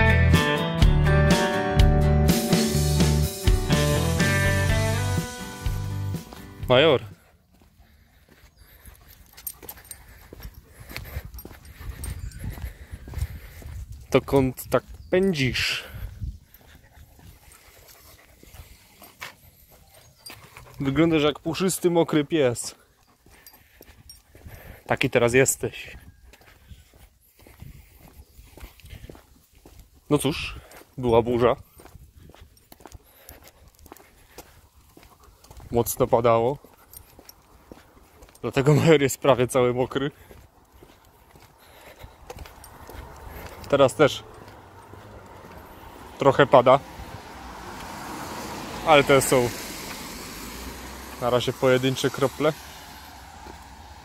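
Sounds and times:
soft footsteps on wet concrete: 6.0s - 54.0s.

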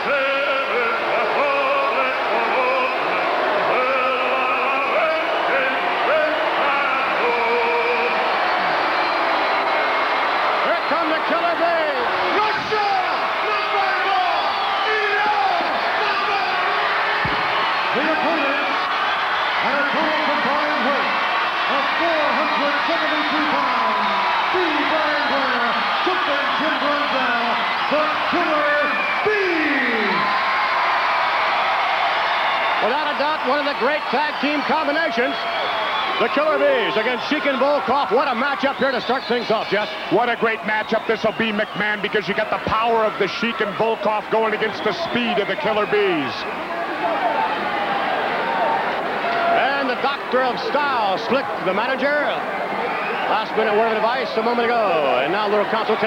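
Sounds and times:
arena crowd shouting and whooping: 0.0s - 56.0s.

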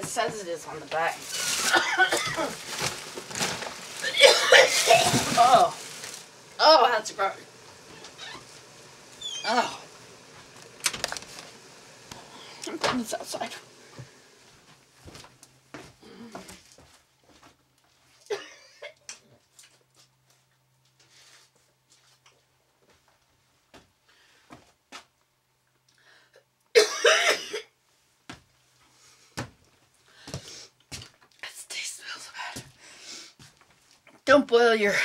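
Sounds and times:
faint steady hum: 0.0s - 35.0s
woman coughing: 1.6s - 2.6s, 4.0s - 5.6s, 18.3s - 19.0s, 26.8s - 27.7s.

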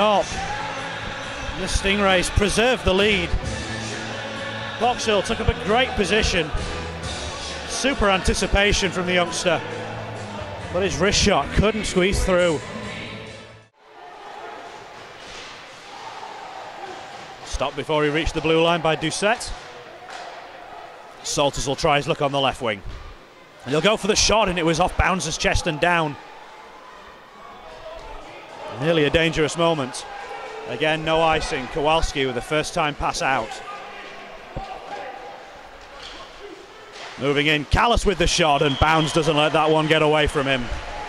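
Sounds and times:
hockey game on ice: 0.0s - 12.7s, 14.0s - 41.0s.

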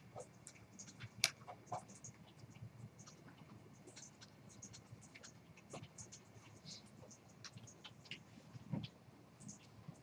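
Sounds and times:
keyboard and mouse clicks: 0.1s - 6.3s.

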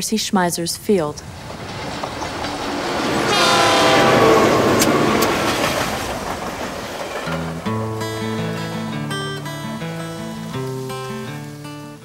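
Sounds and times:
diesel freight train rumble: 0.0s - 12.0s
train horn: 3.2s - 5.4s
acoustic guitar music: 7.2s - 12.0s.

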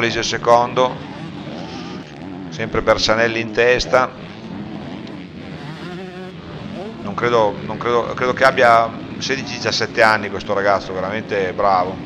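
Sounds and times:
motocross bike engines revving: 0.0s - 12.0s.

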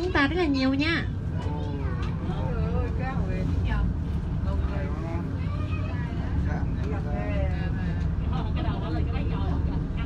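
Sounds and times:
people talking: 0.0s - 10.0s
vehicle engine rumble: 0.0s - 10.0s.

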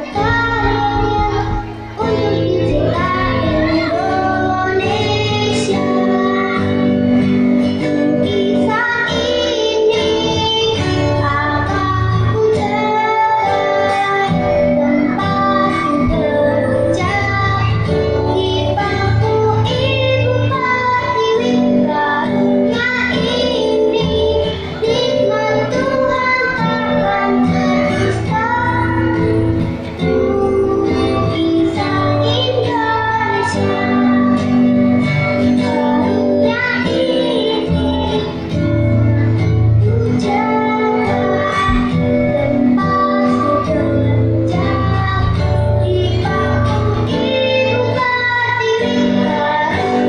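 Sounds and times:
acoustic guitar: 0.0s - 50.0s
girl singing into a microphone: 0.0s - 50.0s.

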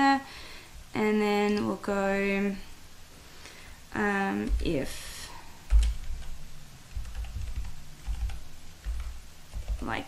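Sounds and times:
computer keyboard typing: 5.7s - 10.0s.

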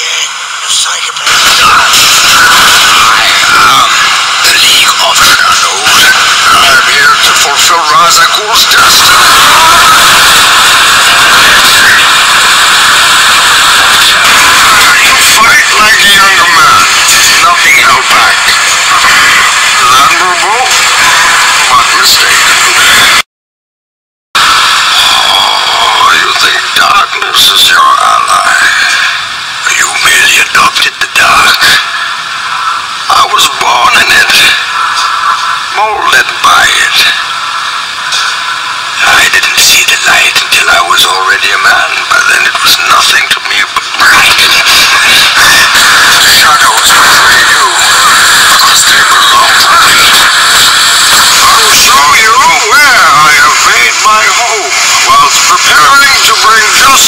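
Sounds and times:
loud static hiss: 0.0s - 23.2s, 24.4s - 57.0s.

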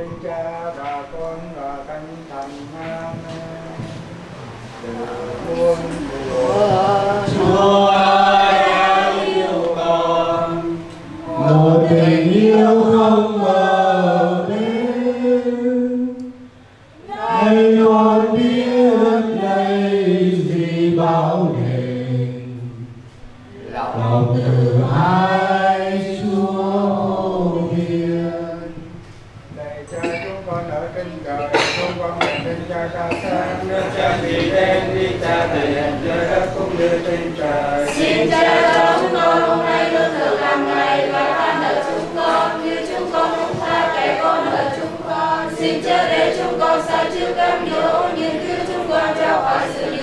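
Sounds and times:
chanting through a microphone: 0.0s - 50.0s
group singing a hymn: 0.0s - 50.0s.

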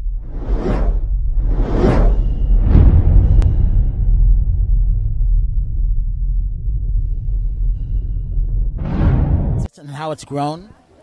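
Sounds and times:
deep rumble: 0.0s - 9.7s
whooshes: 0.0s - 9.7s.

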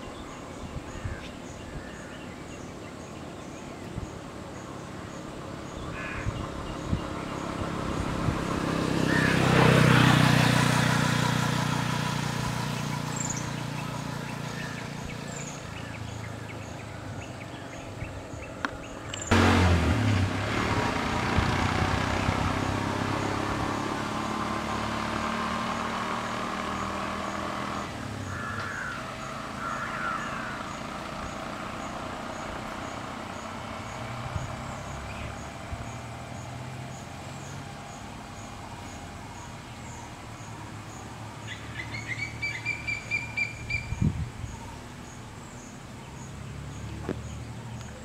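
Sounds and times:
vehicle engine hum: 0.0s - 48.0s.

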